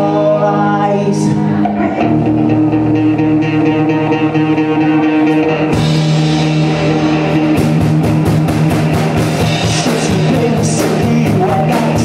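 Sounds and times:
indie rock band playing: 0.0 - 12.0.

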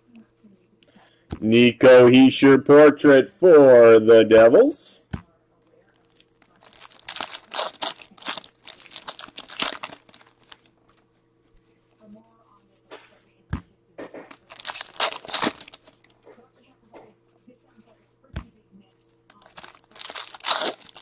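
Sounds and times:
foil wrapper crinkling and tearing: 6.1 - 10.6, 14.3 - 16.0, 19.3 - 21.0.

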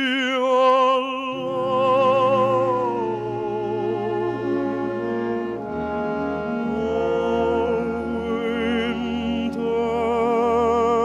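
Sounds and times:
french horns: 1.3 - 11.0
orchestra playing sustained chords: 1.3 - 11.0.

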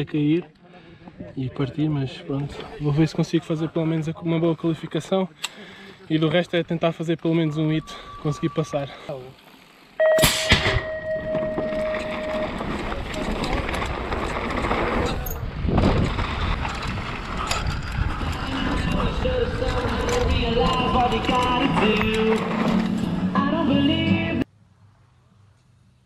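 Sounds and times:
bike chain and frame rattling: 11.1 - 23.2
tyres on loose dirt: 11.2 - 24.4
wind rush on microphone: 13.2 - 21.7.

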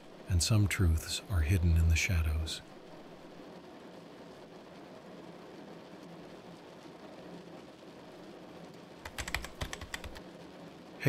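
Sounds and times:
faint steady hiss: 0.0 - 11.0
fast keyboard typing: 9.0 - 10.2.

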